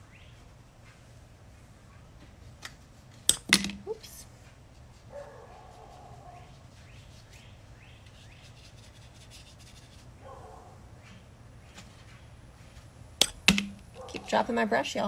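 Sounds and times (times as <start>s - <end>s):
sharp knocks: 13.2s - 14.3s.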